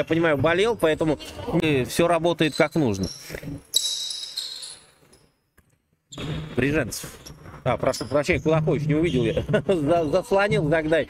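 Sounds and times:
sneaker squeaks on court: 2.4s - 5.2s.

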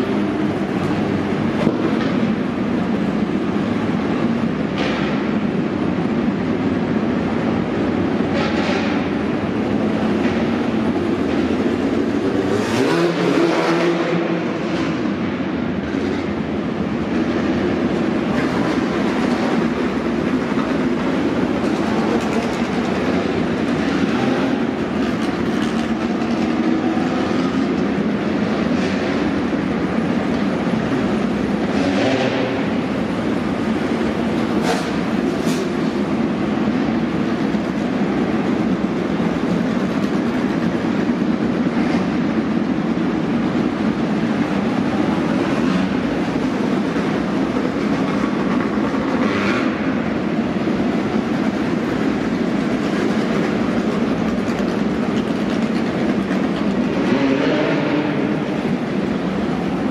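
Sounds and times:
race car engines rumbling: 0.0s - 59.9s.

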